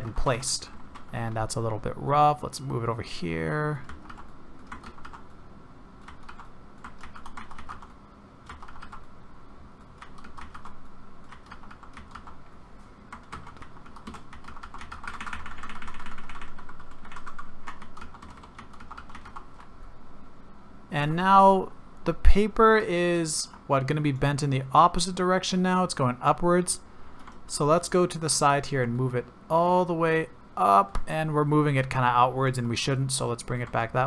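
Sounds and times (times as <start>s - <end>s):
keyboard keys clicking: 6.0s - 7.9s, 10.0s - 12.4s, 13.1s - 19.7s.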